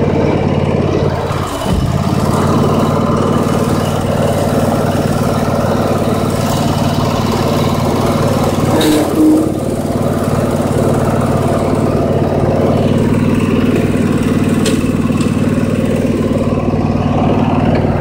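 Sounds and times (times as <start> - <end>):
small engine idling: 0.0 - 18.0.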